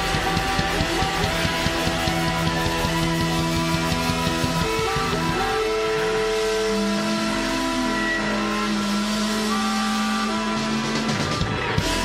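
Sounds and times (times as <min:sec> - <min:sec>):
blues-rock band playing: 0:00.0 - 0:12.0
distorted harmonica notes: 0:00.0 - 0:12.0.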